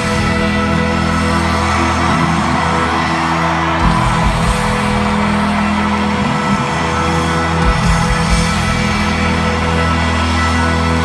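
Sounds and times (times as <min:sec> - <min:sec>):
crowd yelling and whooping: 0:00.0 - 0:11.0
live country band music: 0:00.0 - 0:11.0.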